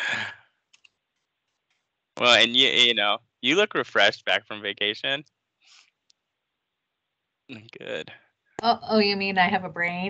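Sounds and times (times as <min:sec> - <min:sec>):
spoken word: 0:00.0 - 0:00.3, 0:02.2 - 0:05.2, 0:07.5 - 0:08.1.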